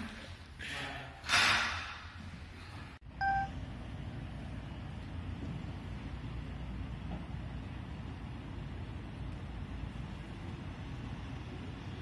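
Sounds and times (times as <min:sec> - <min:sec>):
low steady hum: 0:02.7 - 0:12.0
short electronic beep: 0:03.2 - 0:03.6.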